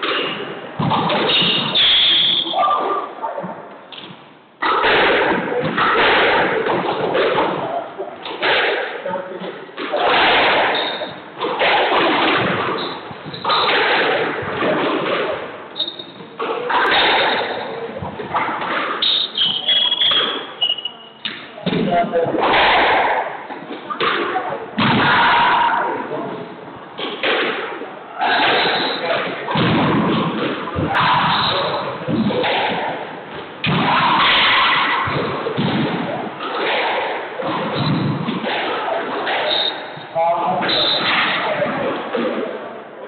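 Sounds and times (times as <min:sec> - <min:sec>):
squash ball struck by rackets: 0:00.0 - 0:02.1, 0:04.0 - 0:09.0, 0:09.8 - 0:15.5, 0:16.4 - 0:19.2, 0:24.0 - 0:25.8, 0:27.0 - 0:39.5
shoes squeaking on hardwood floor: 0:10.7 - 0:11.3, 0:15.7 - 0:16.8.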